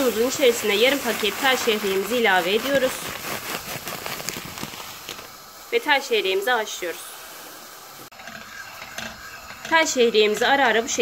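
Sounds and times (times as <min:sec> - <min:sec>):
water boiling: 0:00.0 - 0:11.0.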